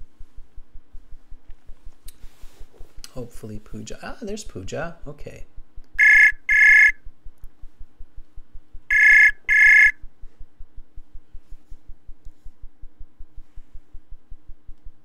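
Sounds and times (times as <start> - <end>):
call ringing tone beeps: 6.0 - 7.0, 8.9 - 10.0.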